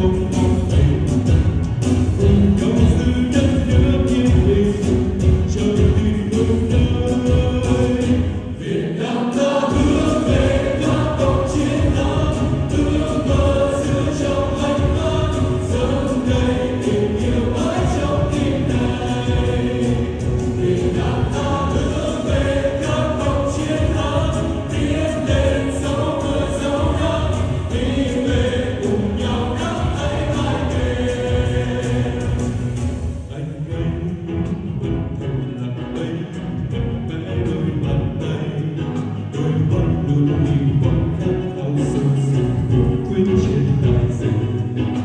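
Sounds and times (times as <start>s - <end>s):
amplified backing track with beat: 0.0s - 8.6s, 9.4s - 38.2s
pop song sung in chorus: 0.0s - 45.0s.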